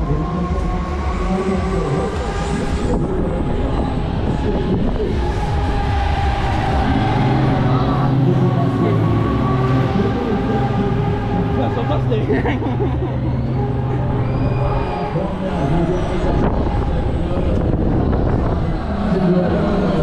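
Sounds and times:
wind rushing over microphone: 0.0s - 11.7s, 13.4s - 20.0s
deep hum: 0.0s - 20.0s
fairground ride rumble: 0.0s - 20.0s
machine whine sliding in pitch: 0.0s - 20.0s.

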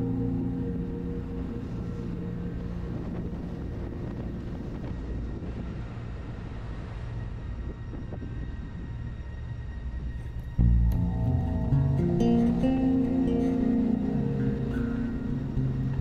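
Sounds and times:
road noise: 0.0s - 16.0s
wind noise: 0.0s - 16.0s.

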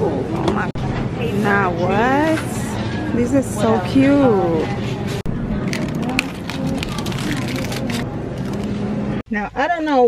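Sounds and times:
hubbub of indistinct voices: 0.0s - 9.2s.

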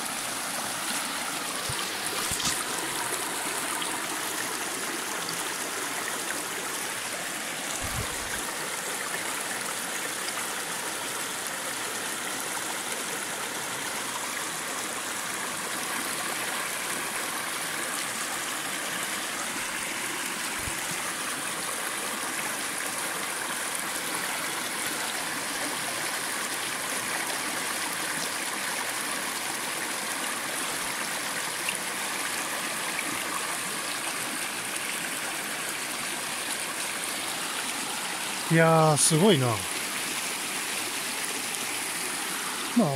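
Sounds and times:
stream flowing over stones: 0.0s - 42.9s.

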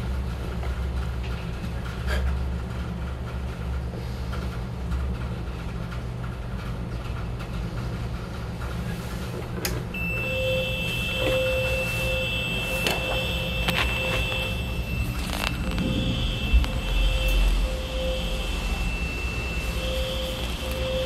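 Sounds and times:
low machinery hum: 0.0s - 21.0s
fire alarm high-pitched tone: 9.9s - 21.0s
lower pulsing alarm tone: 9.9s - 21.0s.

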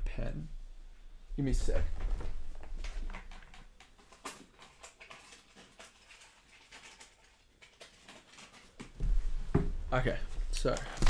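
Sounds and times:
faint knocks and shuffling: 0.0s - 11.0s.

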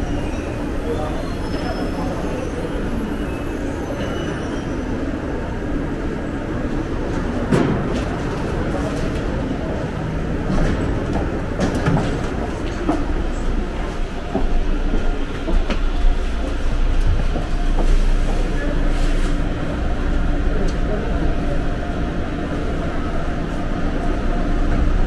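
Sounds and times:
faint voices: 0.0s - 25.0s
train low rumble: 0.0s - 25.0s.

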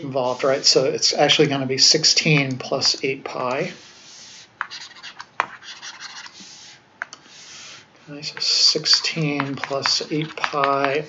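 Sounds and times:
stylus rubbing on screen: 0.2s - 1.5s, 3.5s - 10.6s.

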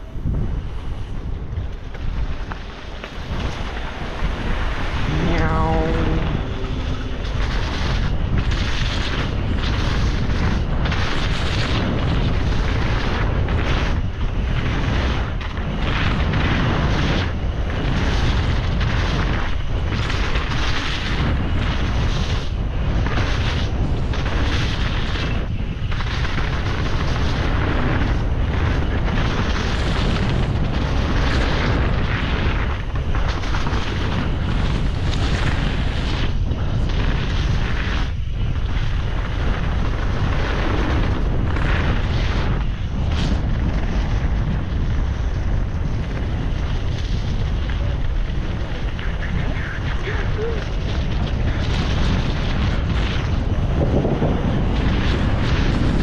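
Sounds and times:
bike tyres rolling over dirt: 0.0s - 56.0s
wind on camera microphone: 0.0s - 56.0s.

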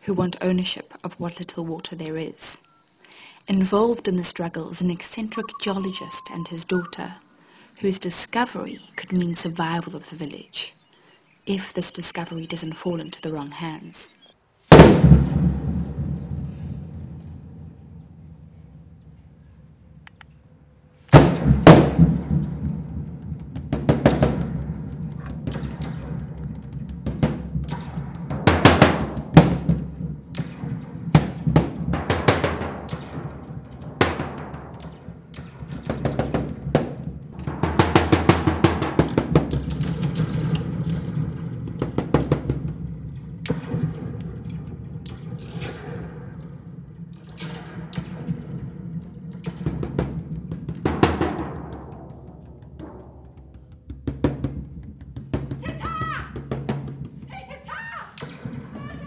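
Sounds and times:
bass drum struck with sticks: 21.1s - 39.8s, 49.5s - 57.3s
hand drum knocks: 49.9s - 55.7s.

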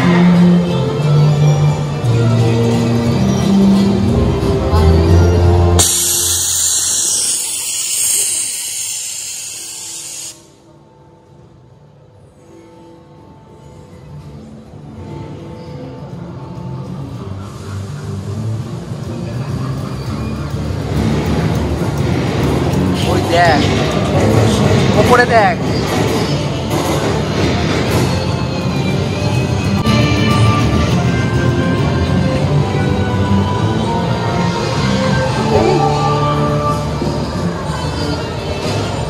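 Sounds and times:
loud hissing rush: 5.8s - 10.6s.

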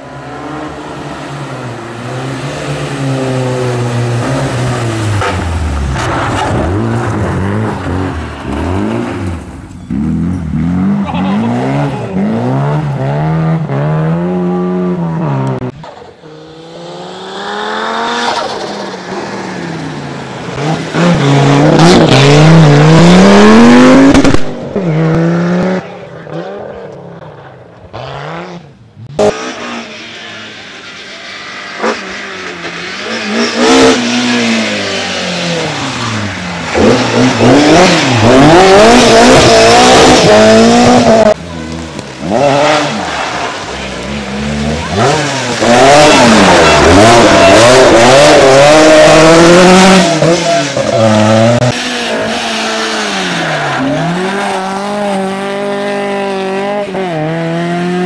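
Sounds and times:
rally car engines revving hard: 0.0s - 58.0s.

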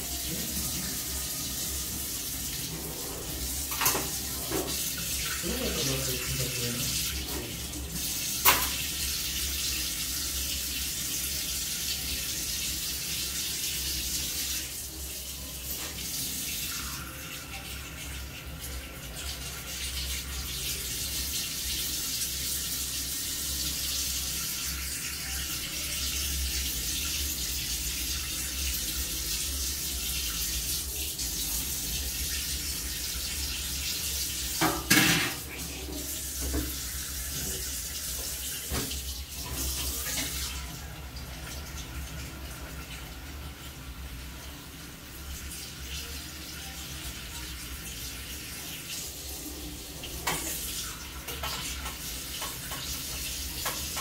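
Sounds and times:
water running from a tap: 0.0s - 54.0s.

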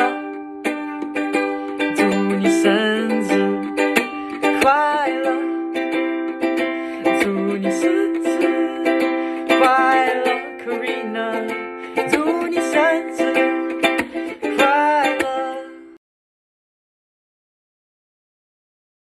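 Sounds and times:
man singing: 0.0s - 0.3s, 1.7s - 16.0s
ukulele strumming chords: 0.0s - 16.0s.

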